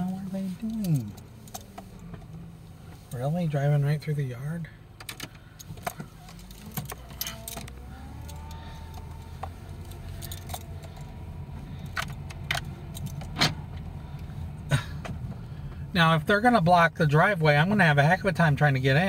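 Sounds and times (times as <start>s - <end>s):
light clicks and jingles: 0.0s - 4.2s, 5.0s - 15.9s
car engine and tyres rumbling: 0.0s - 19.0s.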